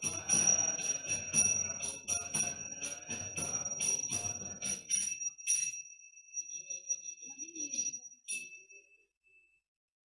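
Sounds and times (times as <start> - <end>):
small bell ringing from metal strikes: 0.0 - 9.5.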